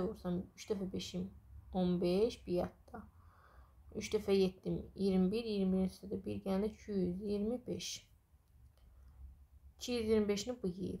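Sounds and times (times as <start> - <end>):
woman speaking: 0.0 - 3.1, 3.9 - 8.1, 9.8 - 11.0.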